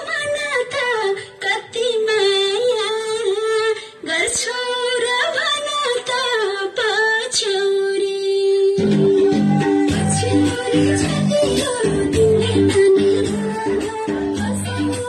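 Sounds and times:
woman singing high melody: 0:00.0 - 0:15.0.

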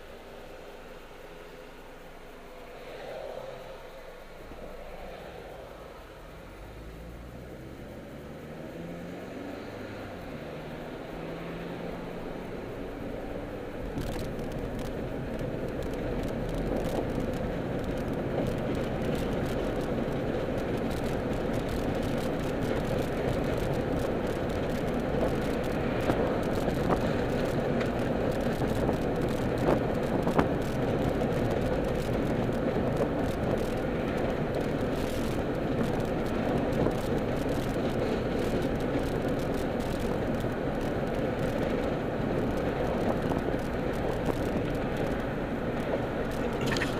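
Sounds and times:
car road and engine noise: 0:00.0 - 0:46.9.

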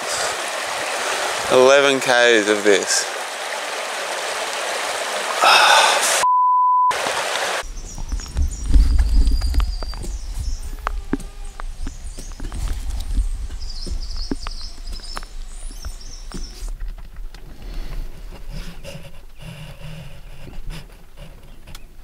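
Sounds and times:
censor bleep: 0:06.2 - 0:07.0
wind on microphone: 0:07.6 - 0:19.1.

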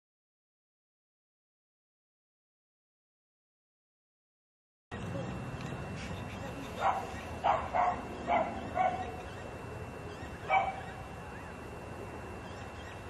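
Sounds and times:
steady background hum: 0:04.9 - 0:13.0
dog barking: 0:06.8 - 0:09.2, 0:10.5 - 0:11.0.

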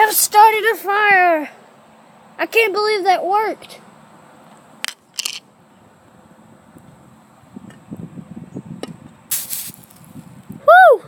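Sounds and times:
water splashing on fire hissing: 0:09.3 - 0:10.1.

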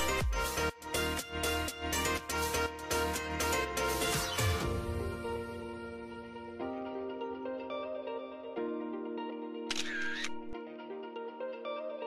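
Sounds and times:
instrumental background music: 0:00.0 - 0:12.0
camera shutter click: 0:09.7 - 0:10.6.

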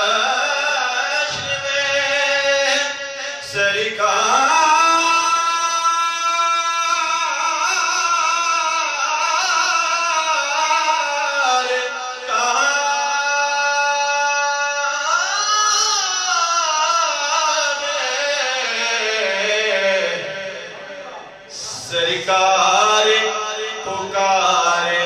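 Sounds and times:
man singing through loudspeakers: 0:00.0 - 0:25.0.

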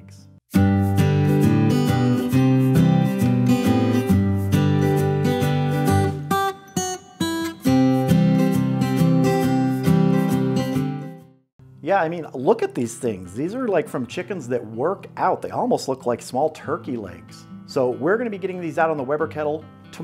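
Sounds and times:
strummed acoustic guitar music: 0:00.5 - 0:11.3.

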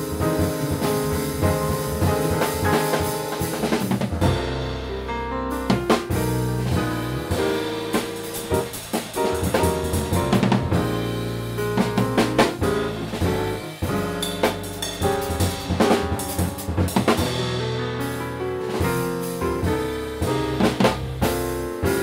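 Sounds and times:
busy drumming: 0:00.0 - 0:22.0
piano: 0:00.0 - 0:22.0.

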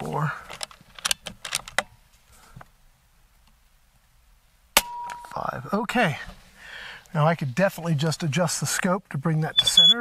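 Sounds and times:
air rifle lever clicks: 0:00.5 - 0:01.9
air rifle shot with ringing: 0:04.8 - 0:05.3.

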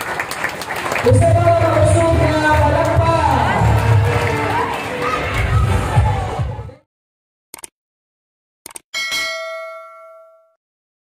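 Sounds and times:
notification bell ding: 0:09.0 - 0:10.6.

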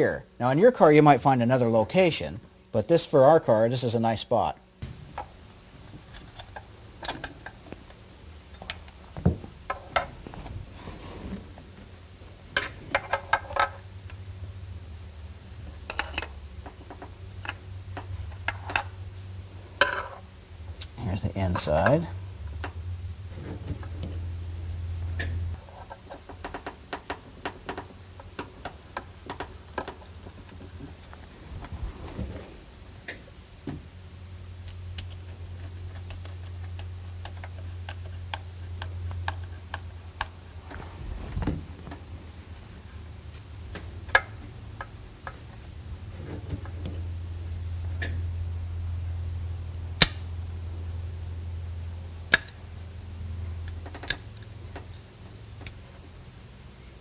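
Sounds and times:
low hum: 0:13.8 - 0:25.6, 0:29.2 - 0:52.2.

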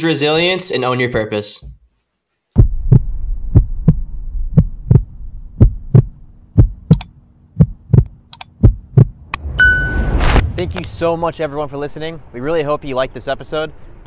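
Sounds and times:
heartbeat-like low thuds: 0:02.6 - 0:09.5
low hum: 0:02.6 - 0:14.0
rushing swell: 0:09.2 - 0:14.0
bright bell ding: 0:09.6 - 0:10.1.

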